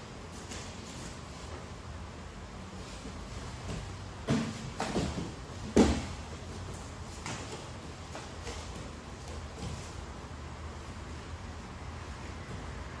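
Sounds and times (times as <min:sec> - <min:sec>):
steady background hum: 0:00.0 - 0:13.0
bodies thumping on foam mats: 0:03.4 - 0:10.0.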